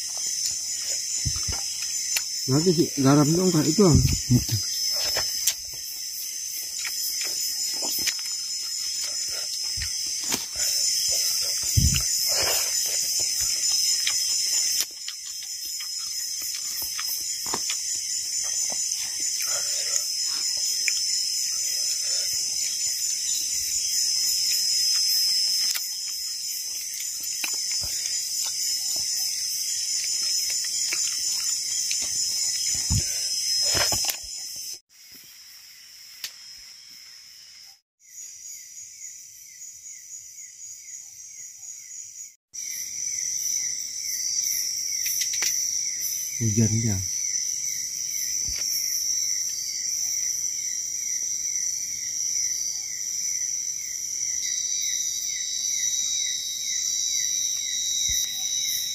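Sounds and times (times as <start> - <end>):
insect chorus: 0.0 - 58.9.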